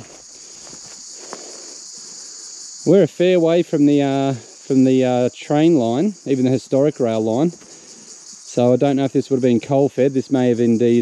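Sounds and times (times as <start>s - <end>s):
footsteps in grass: 0.0s - 2.6s
insects buzzing: 0.0s - 11.0s.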